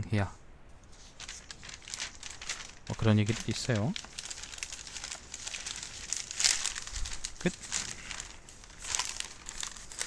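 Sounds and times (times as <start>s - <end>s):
newspaper pages rustling: 0.8s - 10.0s.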